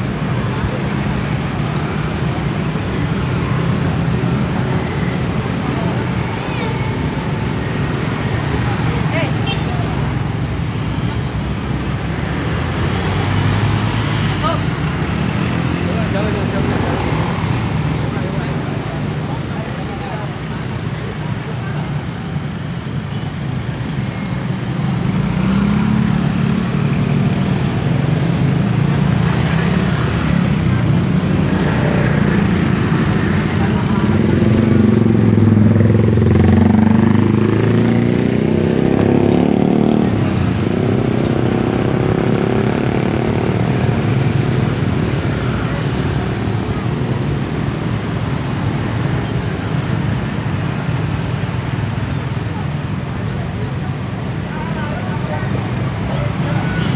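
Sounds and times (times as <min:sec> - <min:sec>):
cars passing: 0:00.0 - 0:56.9
motorcycles passing: 0:00.0 - 0:56.9.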